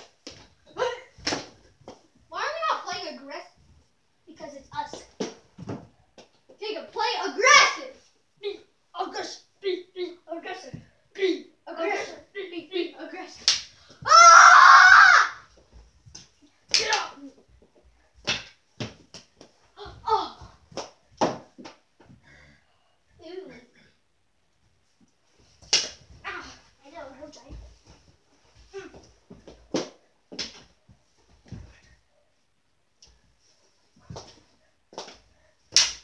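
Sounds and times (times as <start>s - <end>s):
child yelling: 7.1s - 8.0s, 14.0s - 15.4s
sharp smack: 35.7s - 36.0s.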